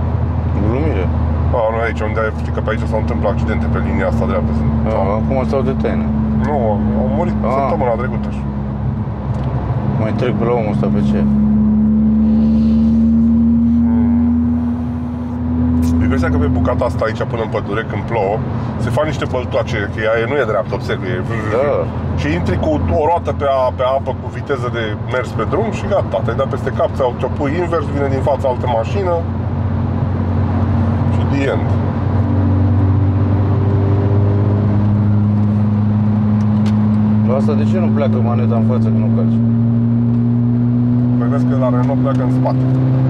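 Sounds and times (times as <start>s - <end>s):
car engine drone from inside: 0.0s - 43.0s
tyre and road noise: 0.0s - 43.0s.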